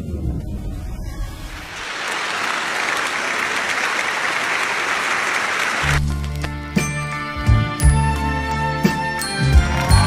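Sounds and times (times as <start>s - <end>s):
audience applauding: 1.7s - 6.3s, 9.3s - 10.0s.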